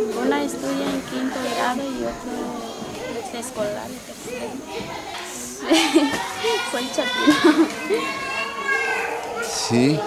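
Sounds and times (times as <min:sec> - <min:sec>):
children playing and calling out: 0:00.0 - 0:10.0.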